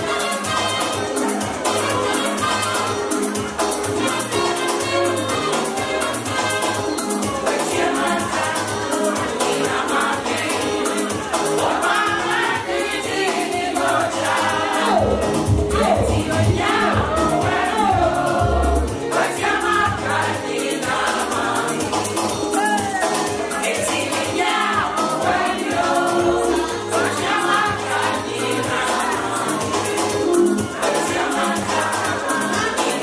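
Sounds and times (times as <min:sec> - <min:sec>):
quick steady percussion beat: 0:00.0 - 0:33.0
choir singing: 0:04.0 - 0:33.0.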